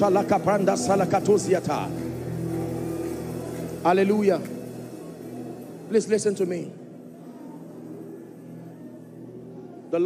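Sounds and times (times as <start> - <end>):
organ-like keyboard pad: 0.0 - 10.0.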